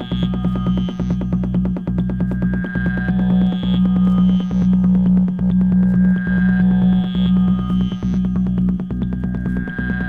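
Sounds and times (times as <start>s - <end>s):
low bass drone: 0.0s - 10.0s
pulsing synth pattern: 0.0s - 10.0s.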